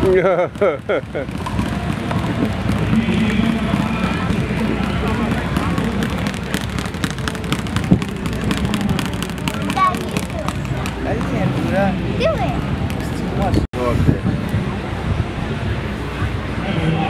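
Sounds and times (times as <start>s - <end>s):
person laughing: 0.0s - 1.3s
outdoor background noise: 0.0s - 17.0s
faint music: 0.1s - 17.0s.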